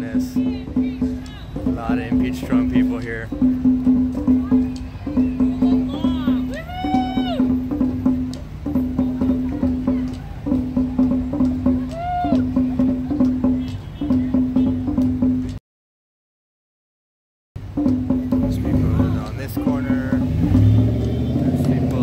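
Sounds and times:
crowd voices: 0.0 - 15.6
drum beating steadily: 0.0 - 15.6, 17.6 - 22.0
rising and falling whoop: 6.5 - 7.5, 11.9 - 12.4.

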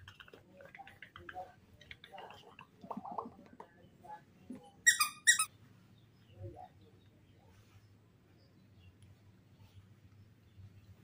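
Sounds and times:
baby monkey squealing: 4.9 - 5.5.

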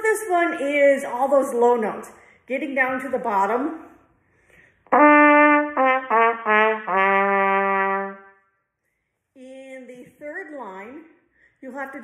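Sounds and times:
trumpet playing low notes: 4.9 - 8.4.

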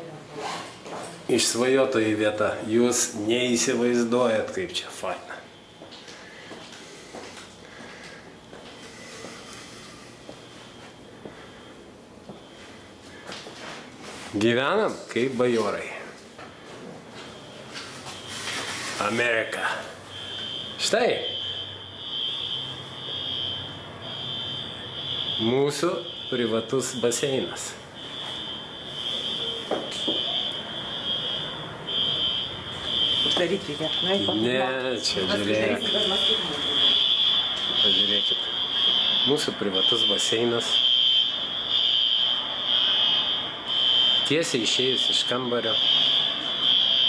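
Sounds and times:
high-pitched continuous whine: 0.0 - 47.0.

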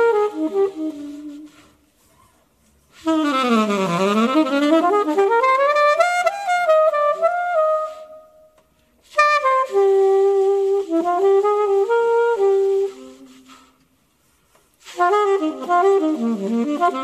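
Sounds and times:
alto saxophone improvising jazz: 0.0 - 17.0.

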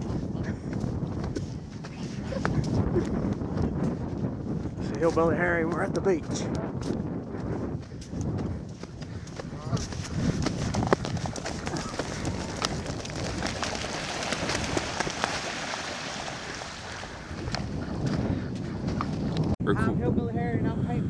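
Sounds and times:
running footsteps on sand: 0.0 - 19.4
wings flapping: 10.2 - 17.9.

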